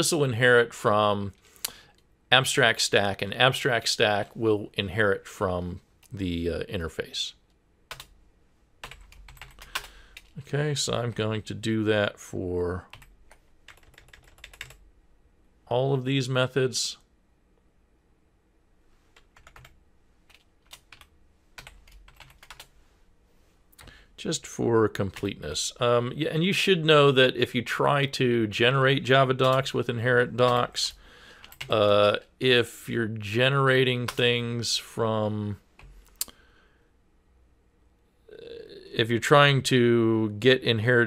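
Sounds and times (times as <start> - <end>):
man speaking: 0.0 - 1.4, 2.3 - 7.4, 10.4 - 12.9, 15.7 - 17.1, 23.8 - 31.0, 31.6 - 35.7, 38.3 - 41.0
typing on computer keyboard: 8.8 - 10.3, 13.7 - 14.8, 19.3 - 22.7.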